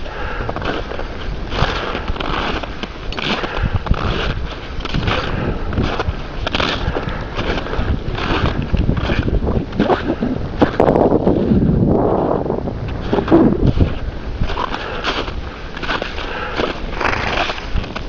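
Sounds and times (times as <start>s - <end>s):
wind rumbling on microphone: 0.0s - 18.0s
boots crunching in snow: 0.6s - 11.5s, 12.8s - 18.0s.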